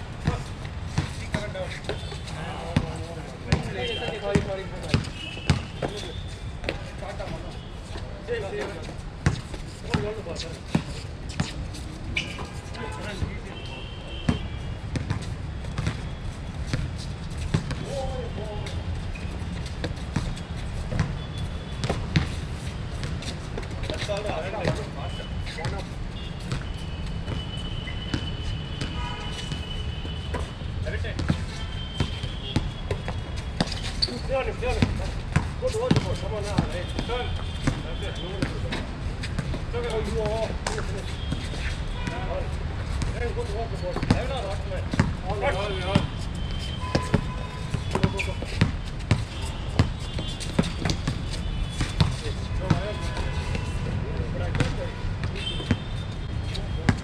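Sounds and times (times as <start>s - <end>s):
basketball bouncing on court: 0.2s - 2.1s, 2.8s - 6.9s, 9.2s - 11.6s, 14.3s - 18.0s, 19.7s - 22.4s, 31.1s - 38.7s, 43.9s - 45.3s, 45.9s - 53.6s, 54.5s - 57.0s.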